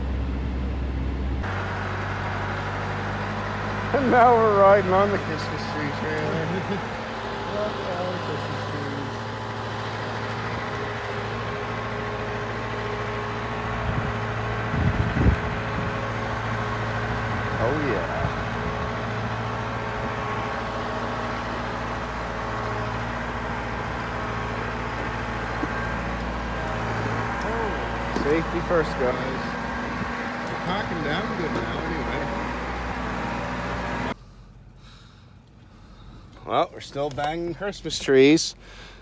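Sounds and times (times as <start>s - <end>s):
truck engine running: 0.0s - 39.0s.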